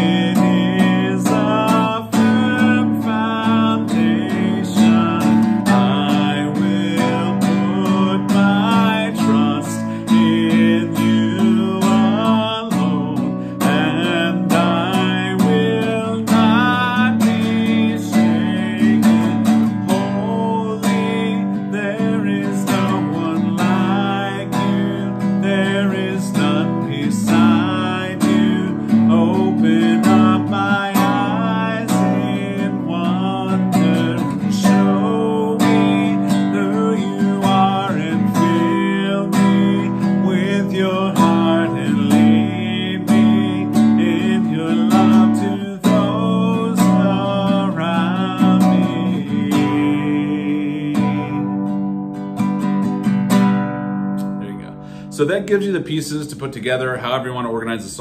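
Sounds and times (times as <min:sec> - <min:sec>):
man singing: 0:00.0 - 0:52.0, 0:54.2 - 0:58.0
classical guitar strummed: 0:00.0 - 0:57.8.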